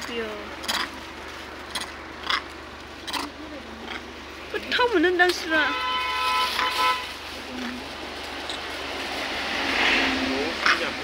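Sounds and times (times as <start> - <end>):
passing motor vehicle: 0.0 - 11.0.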